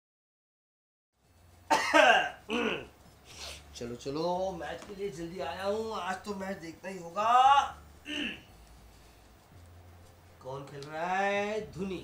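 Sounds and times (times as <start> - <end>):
faint hum: 1.2 - 12.0
man grunting: 8.1 - 8.4.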